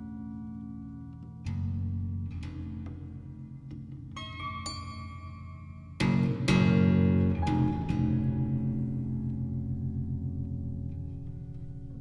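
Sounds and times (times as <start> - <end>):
contraguitar and piano chords: 5.5 - 12.0.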